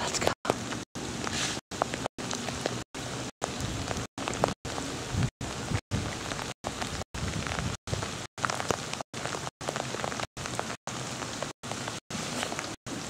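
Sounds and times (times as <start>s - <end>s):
rain patter and hiss: 0.0s - 13.0s.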